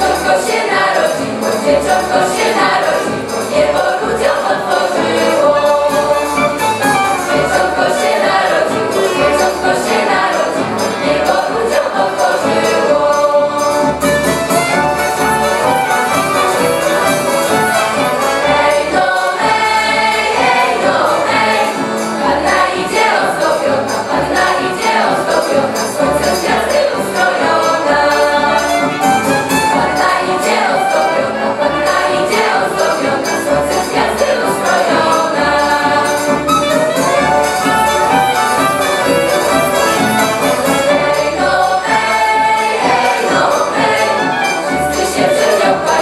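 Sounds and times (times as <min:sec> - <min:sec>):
mixed choir singing a carol: 0:00.0 - 0:46.0.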